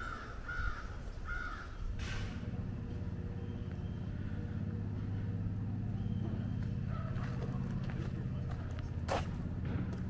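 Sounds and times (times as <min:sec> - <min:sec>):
vehicle engine running: 0:01.9 - 0:10.0.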